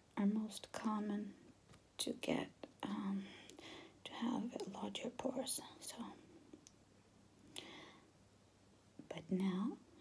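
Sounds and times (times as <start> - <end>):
soft breath: 3.1 - 4.2, 7.5 - 8.2
person whispering: 4.0 - 6.3.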